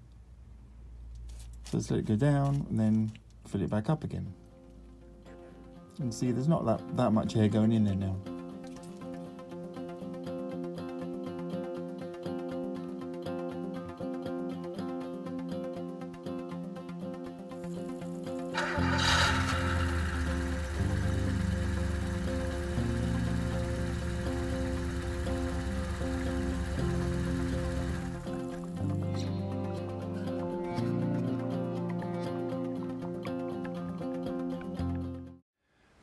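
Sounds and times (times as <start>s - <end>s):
instrumental music with bass line: 18.2s - 35.4s.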